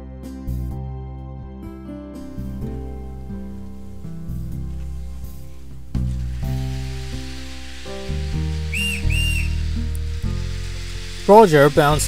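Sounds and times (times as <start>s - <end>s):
slow held music chords: 2.2s - 12.0s
steady hiss: 2.2s - 12.0s
steam train whistle toots: 6.6s - 12.0s.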